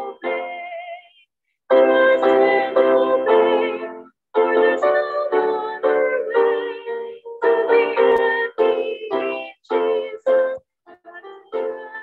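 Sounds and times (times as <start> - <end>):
woman singing a hymn: 0.0 - 1.2, 1.8 - 12.0.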